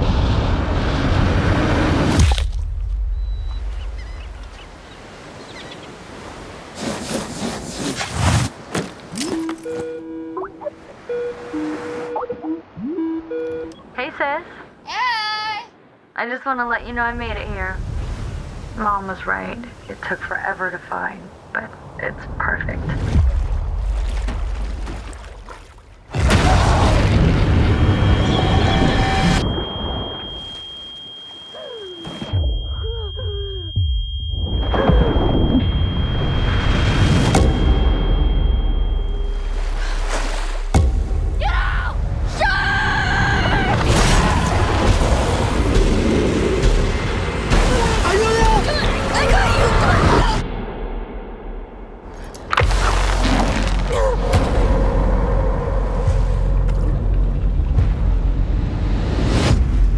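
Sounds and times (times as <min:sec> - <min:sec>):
loud boom: 0:00.0 - 0:03.2, 0:26.1 - 0:30.2
churning water rush: 0:17.0 - 0:29.2, 0:39.1 - 0:42.4, 0:43.2 - 0:50.4
dramatic sound effects and music: 0:26.2 - 0:39.8, 0:43.9 - 0:59.9
high steady ringing tone: 0:27.7 - 0:39.5
low booms: 0:43.8 - 0:59.9
voices shouting for help: 0:47.7 - 0:50.4.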